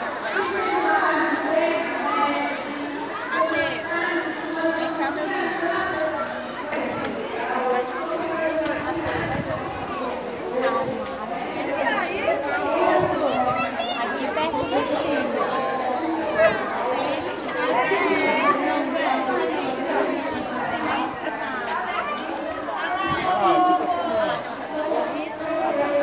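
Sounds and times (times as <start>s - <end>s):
children and adults chattering: 0.0s - 26.0s.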